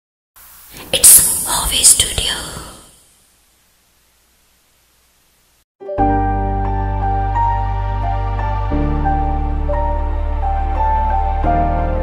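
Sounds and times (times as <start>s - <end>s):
breathy whispered sound effect: 0.7s - 3.1s.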